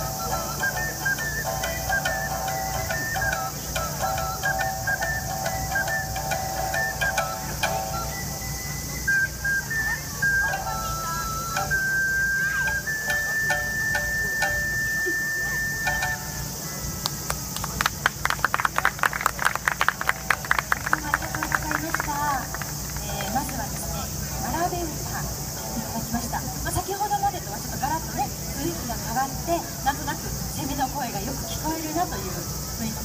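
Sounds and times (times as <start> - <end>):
plucked shamisen: 0.0 - 16.9
ocarina melody: 0.0 - 17.2
people clapping: 17.0 - 24.0.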